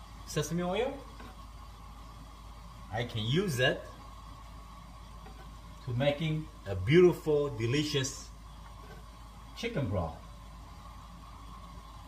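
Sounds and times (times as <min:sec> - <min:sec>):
water boiling in a pan: 0:00.0 - 0:12.0.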